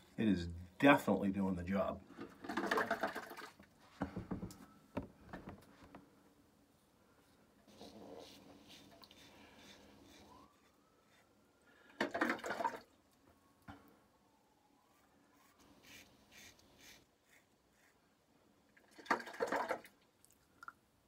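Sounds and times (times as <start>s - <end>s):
water splashes: 2.5s - 3.6s, 12.0s - 12.9s, 18.9s - 20.4s.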